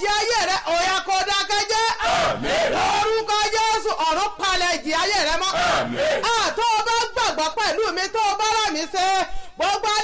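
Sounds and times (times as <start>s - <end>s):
woman praying aloud: 0.0s - 2.1s, 2.8s - 10.0s.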